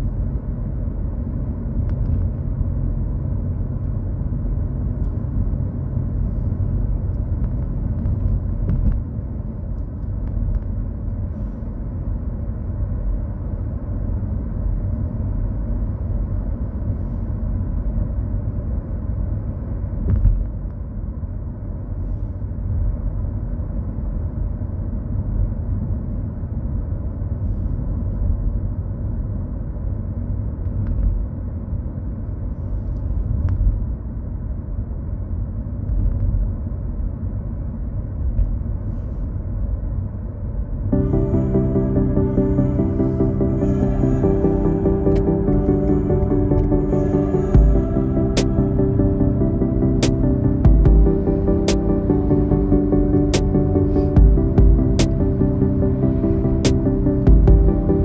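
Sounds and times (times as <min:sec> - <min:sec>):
road and tyre noise in car: 0:00.0 - 0:58.0.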